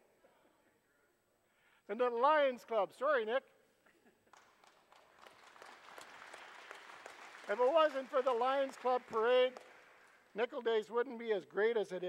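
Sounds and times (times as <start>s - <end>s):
audience applauding: 4.3s - 10.4s.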